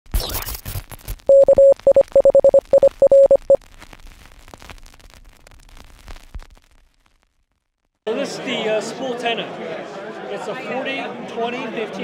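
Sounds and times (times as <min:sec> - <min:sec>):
crackling radio static: 0:00.1 - 0:08.0
morse code beeping: 0:01.3 - 0:03.6.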